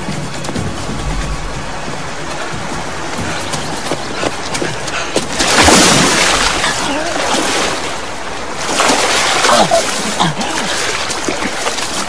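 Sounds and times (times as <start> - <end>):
water splashing: 0.7 - 12.0.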